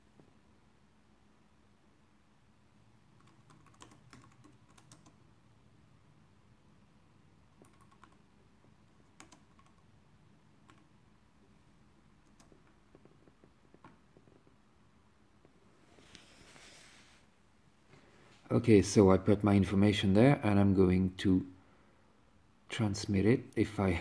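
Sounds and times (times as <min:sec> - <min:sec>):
typing on laptop keyboard: 0:03.2 - 0:05.2, 0:07.5 - 0:08.2, 0:08.9 - 0:09.9, 0:10.6 - 0:10.9, 0:12.2 - 0:13.9.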